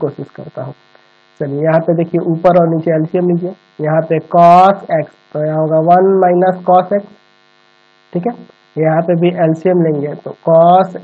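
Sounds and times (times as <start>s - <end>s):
faint steady tones: 0.0s - 11.0s.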